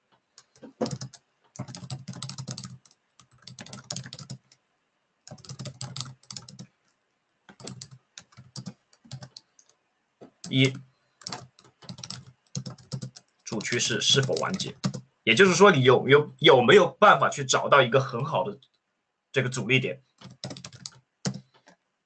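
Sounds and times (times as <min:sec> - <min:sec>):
keyboard typing: 0:00.4 - 0:04.6, 0:05.3 - 0:06.7, 0:07.5 - 0:15.0, 0:20.2 - 0:21.8
person speaking: 0:10.4 - 0:10.8, 0:13.5 - 0:18.6, 0:19.4 - 0:20.0.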